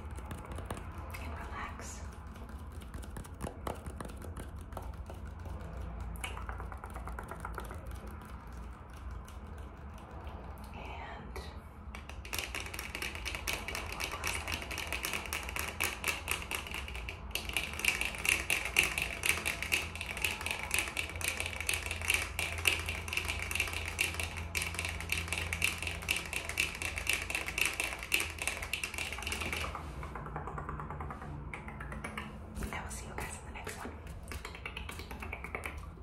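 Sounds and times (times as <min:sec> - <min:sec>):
fingernail tapping: 0:00.0 - 0:10.5, 0:12.0 - 0:32.7.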